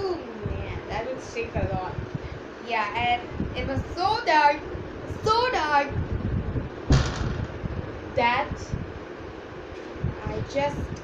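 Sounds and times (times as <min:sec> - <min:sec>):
sharp thump: 0:06.9 - 0:07.7
low rumble: 0:06.9 - 0:08.9.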